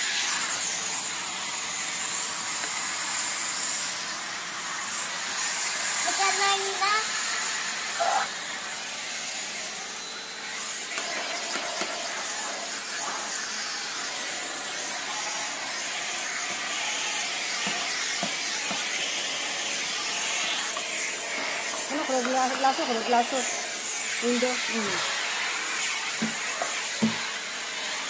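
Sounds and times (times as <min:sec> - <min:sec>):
vacuum cleaner running: 0:00.0 - 0:28.0.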